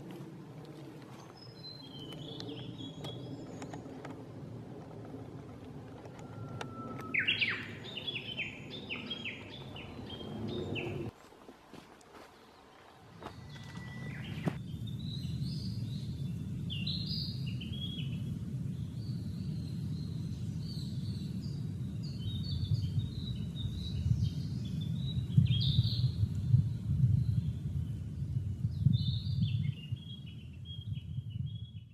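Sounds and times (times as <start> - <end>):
steady low rumble: 0.0 - 11.2, 13.1 - 31.8
small songbird singing: 6.2 - 11.1, 13.3 - 31.9.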